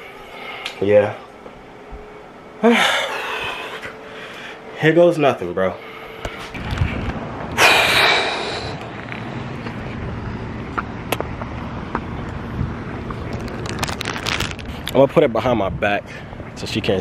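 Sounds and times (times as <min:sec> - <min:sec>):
outdoor background noise: 0:00.0 - 0:17.0.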